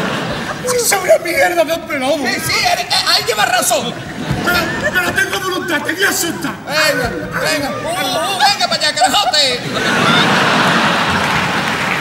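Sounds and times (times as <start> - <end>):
audience laughing: 0.0 - 12.0
audience applauding: 2.5 - 12.0.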